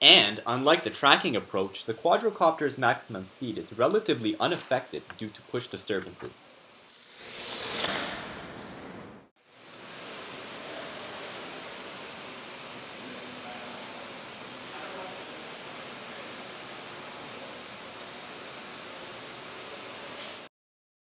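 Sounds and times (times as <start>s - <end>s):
drone propellers whirring: 9.6s - 19.8s.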